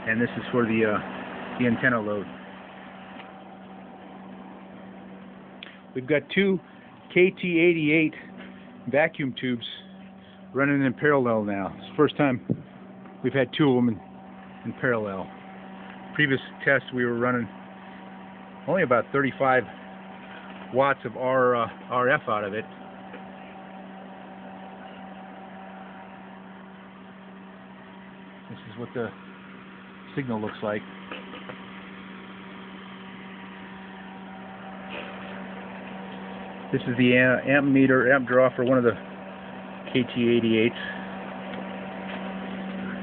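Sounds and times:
cooling fans whirring: 0.0s - 43.0s
steady electrical hum: 0.0s - 43.0s.

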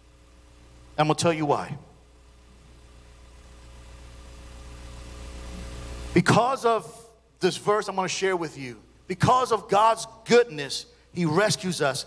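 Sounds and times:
light hiss: 0.0s - 1.0s, 1.9s - 7.3s
steady low hum: 0.0s - 12.0s.

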